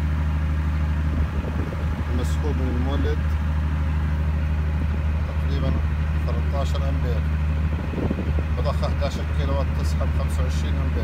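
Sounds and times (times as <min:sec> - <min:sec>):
diesel generator humming: 0:00.0 - 0:11.0.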